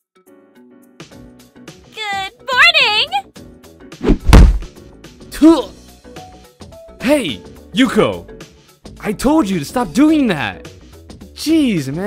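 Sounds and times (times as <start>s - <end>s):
heavy smack thuds: 4.0s - 4.8s.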